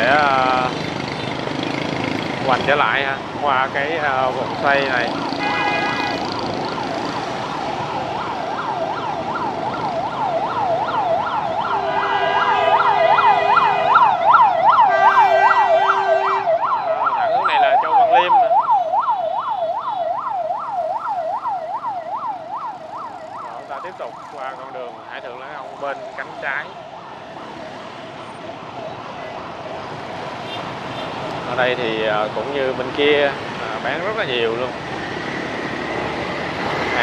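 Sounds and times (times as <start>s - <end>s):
ambulance siren wailing: 0.0s - 37.0s
motorbike traffic noise: 0.0s - 37.0s
long horn blasts: 5.4s - 6.2s, 14.9s - 16.5s.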